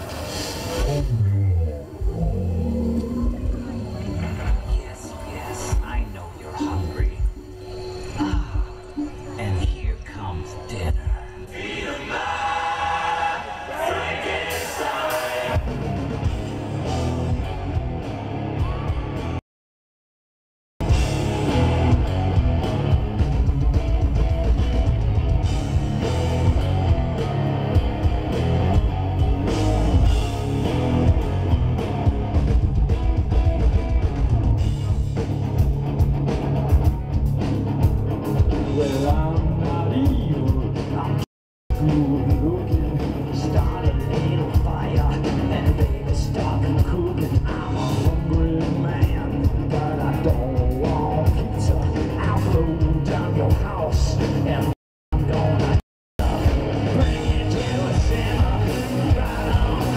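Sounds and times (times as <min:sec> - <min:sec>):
drum kit: 0:00.0 - 0:02.2, 0:13.8 - 0:19.4, 0:20.8 - 0:59.9
live rock music: 0:00.0 - 0:02.2, 0:03.1 - 0:08.6, 0:09.2 - 0:19.4, 0:20.8 - 0:59.9
bass guitar: 0:00.0 - 0:06.0, 0:13.8 - 0:19.4, 0:20.8 - 0:59.9
choir-like held chord: 0:11.3 - 0:15.7
electric guitars: 0:13.9 - 0:19.4, 0:20.8 - 0:59.9
person singing: 0:38.7 - 0:59.9.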